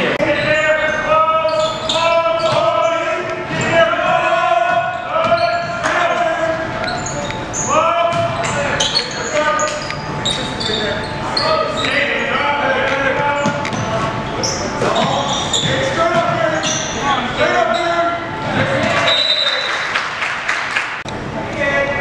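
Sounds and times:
sneaker squeaks: 0.0 - 19.9
voices calling out: 0.0 - 20.0.

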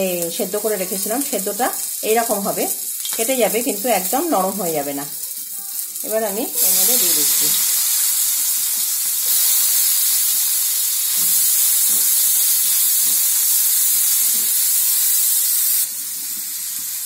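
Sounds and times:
food sizzling in hot oil: 0.0 - 17.0.

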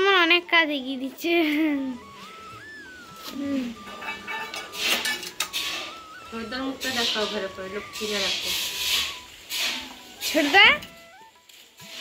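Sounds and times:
steel plates clinking and scraping: 3.7 - 7.4.

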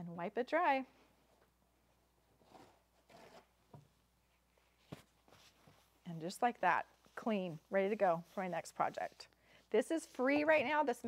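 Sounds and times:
paper towel rubbing a mat: 6.7 - 10.5.

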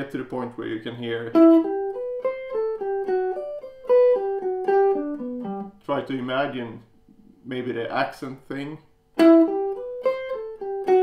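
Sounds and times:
electric guitar melodic line: 1.3 - 6.3, 9.2 - 11.0.

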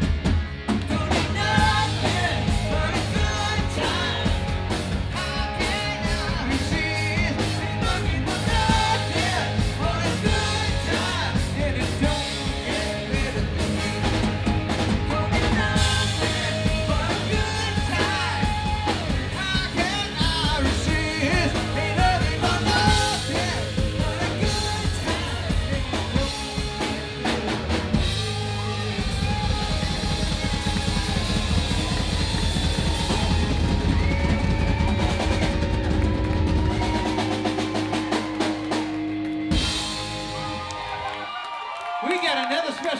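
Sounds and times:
drum rolls: 0.0 - 41.2
live rock band playing: 0.0 - 41.4.

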